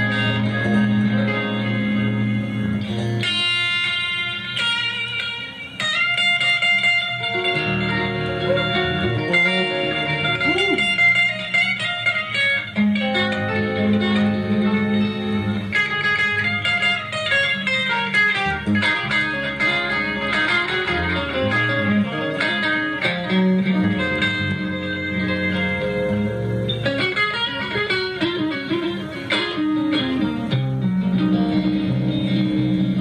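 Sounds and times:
bass guitar: 0.0 - 33.0
electric guitar soloing: 0.0 - 33.0.

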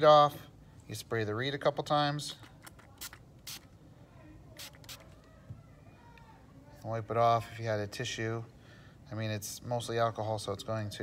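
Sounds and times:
spray bottle spraying: 2.9 - 3.7, 4.6 - 5.1.

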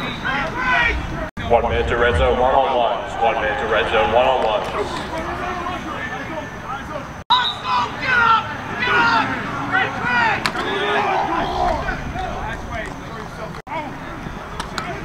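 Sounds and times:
players and coaches shouting: 0.0 - 1.6, 2.2 - 14.2.

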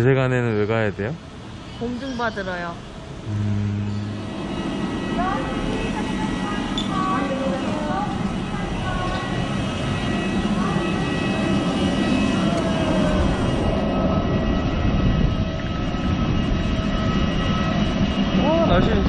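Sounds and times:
jet airliner engine whine: 2.8 - 19.0
wind buffeting microphone: 4.1 - 19.0.

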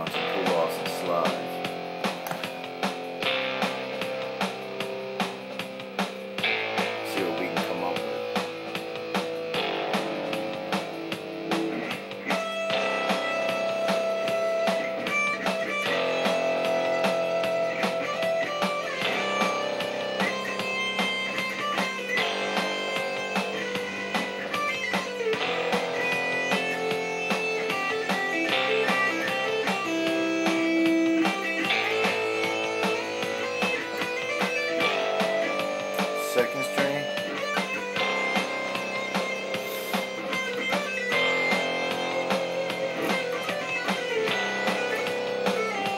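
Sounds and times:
electric guitar melodic lines: 0.0 - 45.9
strummed chords backing track: 0.0 - 45.9.

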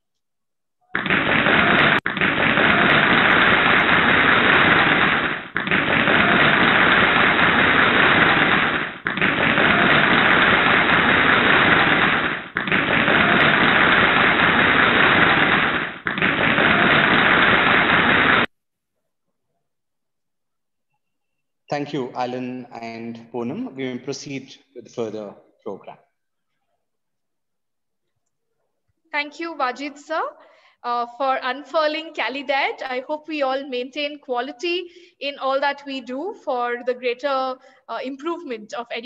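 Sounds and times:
harsh distorted static noise: 1.0 - 18.5.

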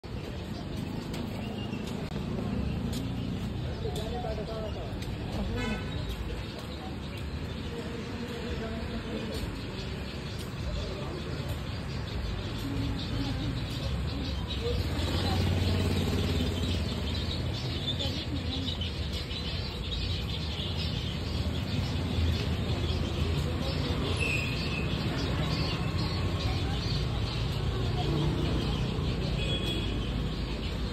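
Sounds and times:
street traffic noise: 0.0 - 30.9
people talking: 0.1 - 20.6, 21.8 - 30.2.

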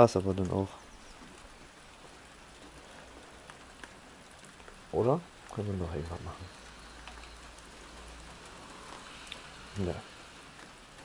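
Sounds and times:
light rain hissing on paving: 0.0 - 11.0.

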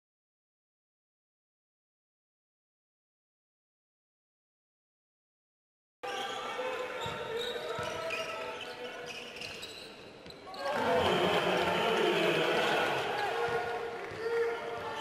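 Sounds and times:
crowd noise: 6.0 - 15.0
voices: 10.5 - 15.0.

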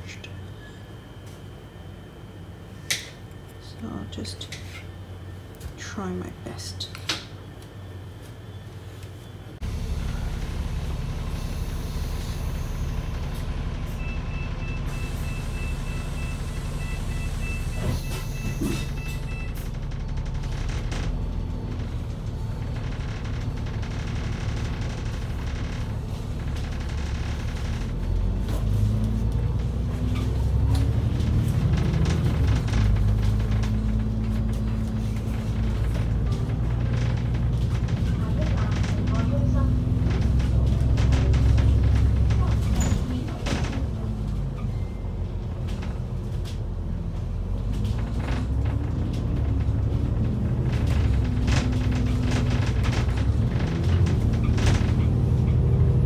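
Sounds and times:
bus engine rumbling: 9.5 - 56.0.

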